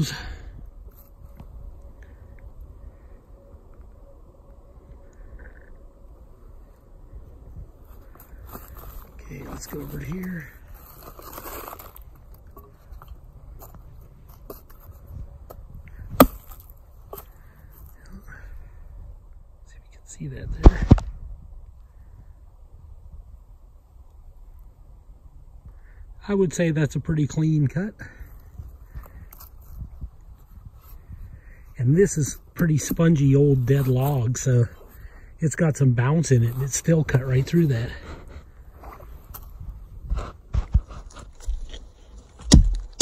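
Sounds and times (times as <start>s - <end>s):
crunching and rustling on leaf litter: 7.8s - 12.9s
hatchet chopping branch: 16.1s - 16.7s.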